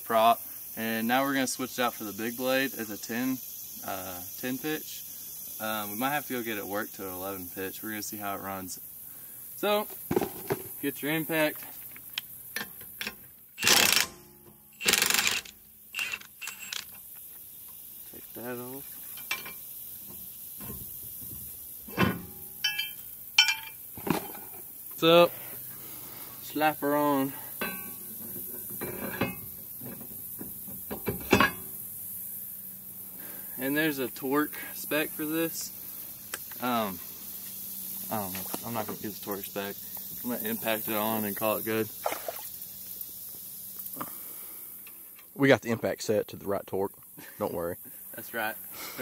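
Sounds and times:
steady high hiss: 0.0s - 49.0s
metal parts clinking: 14.8s - 17.1s, 22.6s - 23.8s.

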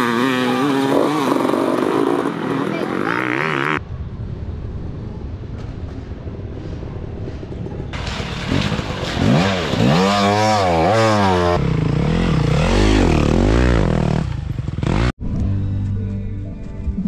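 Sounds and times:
dirt bike engines revving: 0.0s - 3.8s, 8.0s - 15.1s.

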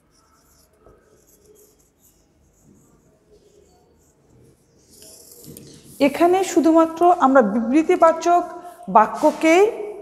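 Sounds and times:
marker scratching on whiteboard: 0.0s - 7.2s, 9.1s - 9.6s.

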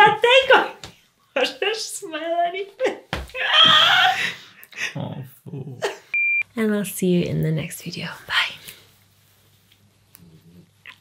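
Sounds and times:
woman's voice: 6.5s - 8.6s.

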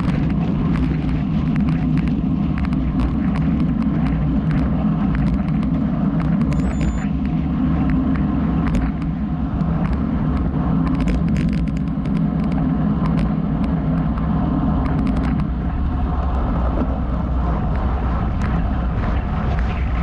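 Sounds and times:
tyres on asphalt: 0.0s - 20.0s
wind rumble on microphone: 0.0s - 20.0s.

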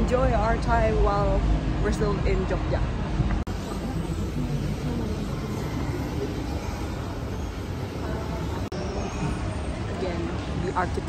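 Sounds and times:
low rumble of mall ambience: 0.0s - 11.0s
faint distant voices: 3.4s - 11.0s.

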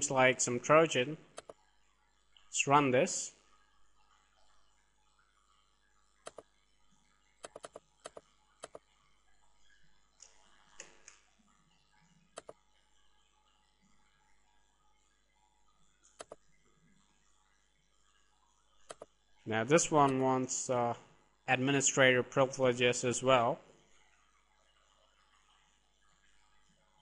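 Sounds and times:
computer mouse clicks: 1.4s - 1.6s, 6.2s - 6.5s, 7.4s - 8.9s, 12.4s - 12.6s, 16.0s - 16.4s, 18.9s - 19.1s.

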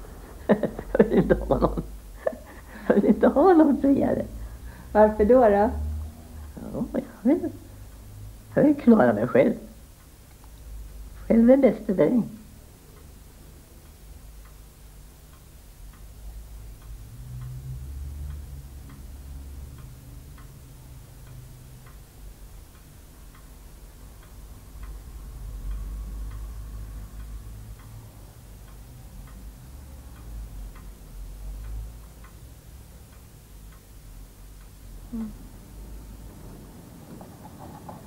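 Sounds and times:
clock ticking: 12.5s - 38.0s.

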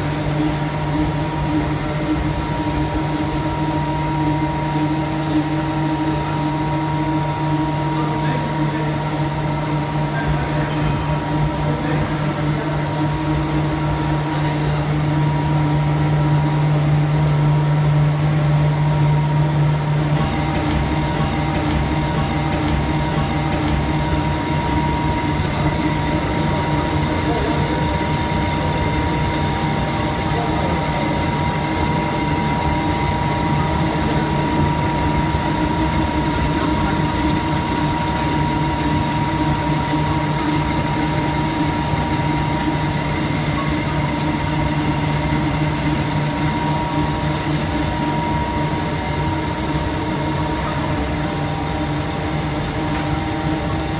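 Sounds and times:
paper slitting machine running: 19.4s - 53.9s.

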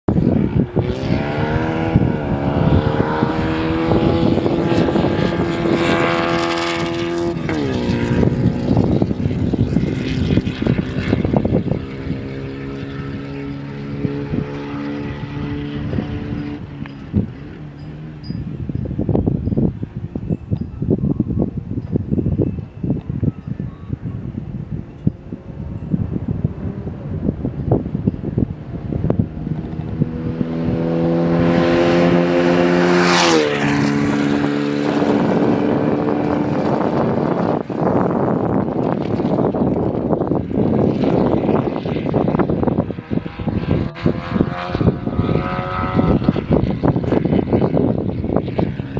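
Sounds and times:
race car engine: 0.1s - 20.3s, 23.9s - 48.9s
wind rumbling on microphone: 0.1s - 48.9s.

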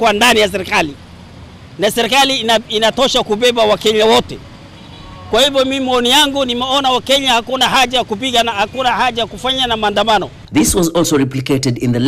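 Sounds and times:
man speaking: 0.0s - 1.0s, 1.8s - 4.5s, 5.3s - 12.0s
street traffic hum: 0.0s - 12.0s.

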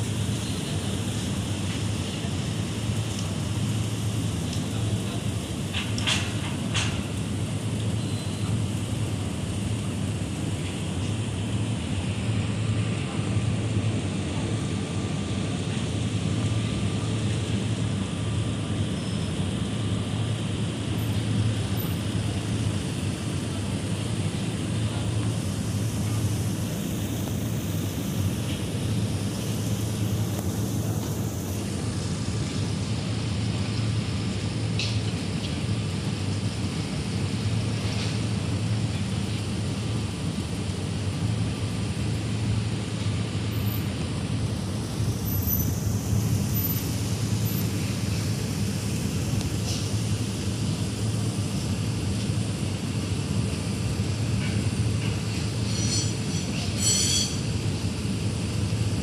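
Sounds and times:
machinery humming: 0.0s - 59.0s.

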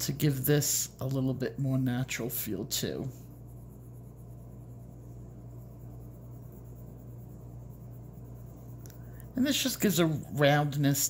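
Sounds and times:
pencil scratching on paper: 0.0s - 11.0s
steady low hum: 0.0s - 11.0s.

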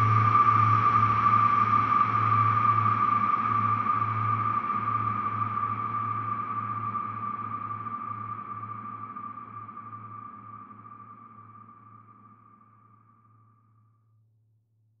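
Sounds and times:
high sonar-like tone: 0.0s - 14.0s.

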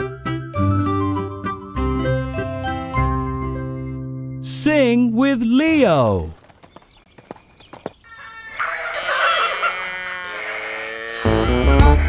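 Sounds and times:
sheep bleating: 8.1s - 12.0s.

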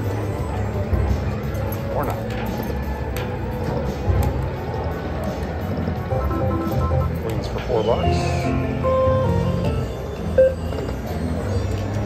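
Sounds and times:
slot machine music and chimes: 6.0s - 11.7s.

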